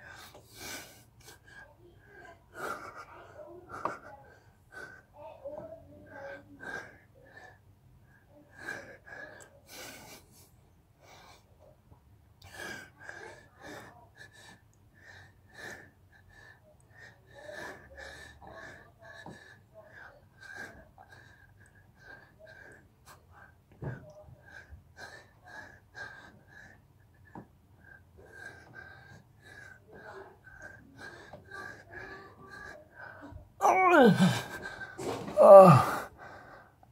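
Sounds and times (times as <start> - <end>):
man breathing hard: 12.4 - 36.9.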